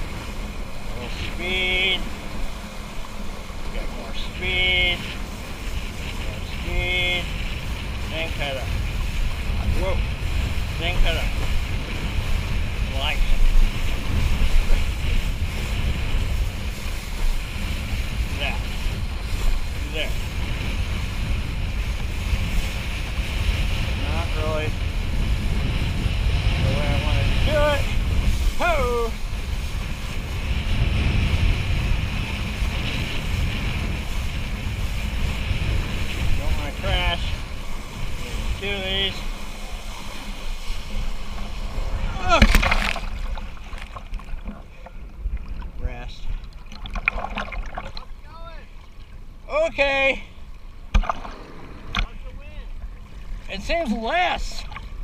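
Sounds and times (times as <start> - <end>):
wind buffeting microphone: 0.0 - 55.0
water rushing past board: 24.7 - 49.4, 50.6 - 55.0.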